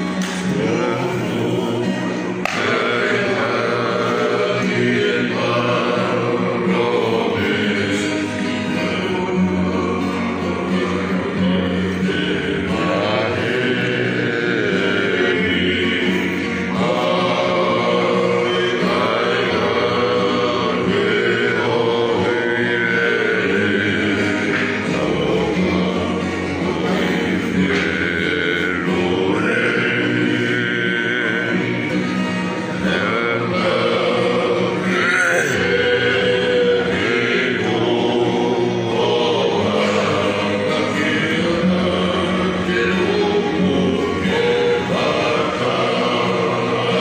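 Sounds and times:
acoustic guitars: 0.0s - 47.0s
men singing together: 0.0s - 47.0s.

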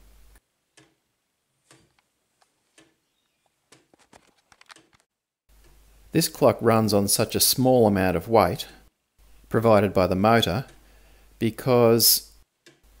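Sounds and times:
wooden clock ticking: 0.7s - 1.1s, 2.7s - 3.0s
closer-spaced clicks: 1.7s - 5.8s.

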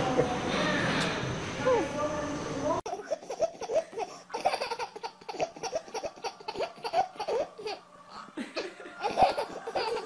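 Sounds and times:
baby laughing: 2.9s - 10.0s.

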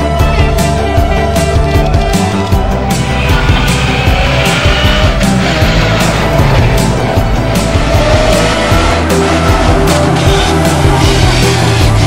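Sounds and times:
rock music: 0.0s - 12.0s
car engine revving: 0.2s - 12.0s.

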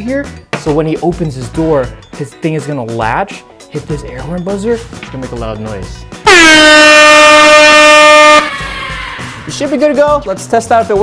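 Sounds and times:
air horn blaring: 6.2s - 9.3s.

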